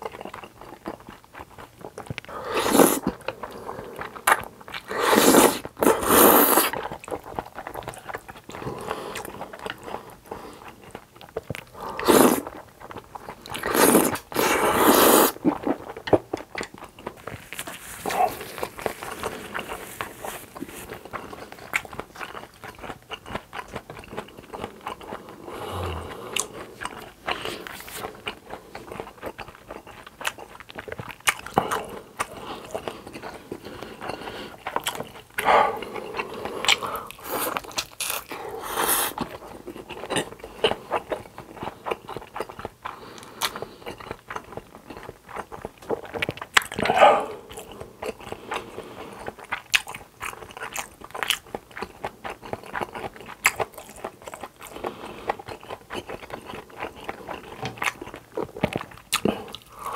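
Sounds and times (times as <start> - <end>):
person chewing food: 0.0 - 59.9.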